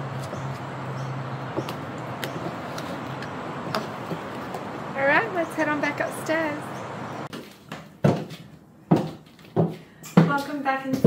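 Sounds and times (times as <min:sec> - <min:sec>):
high heels climbing stairs: 0:07.3 - 0:11.0.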